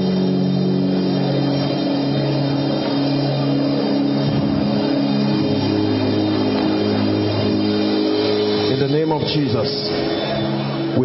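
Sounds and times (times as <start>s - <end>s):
sustained keyboard chords: 0.0s - 11.0s
man speaking: 8.7s - 10.0s.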